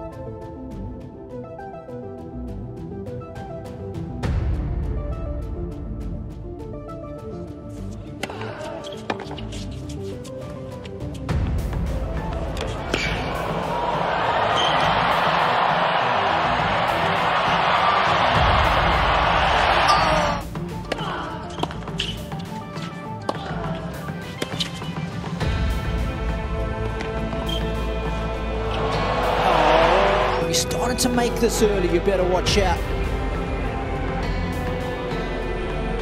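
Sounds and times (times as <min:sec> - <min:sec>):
background music: 0:00.0 - 0:36.0
crowd cheering and applauding: 0:12.7 - 0:20.4, 0:28.2 - 0:30.8.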